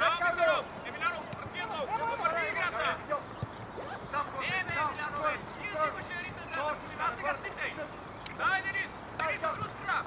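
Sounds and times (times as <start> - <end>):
voices calling out: 0.0 - 10.0.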